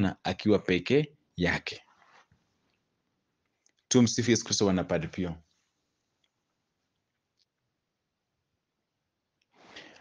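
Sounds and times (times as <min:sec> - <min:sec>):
man speaking: 0:00.0 - 0:02.0, 0:03.9 - 0:05.4.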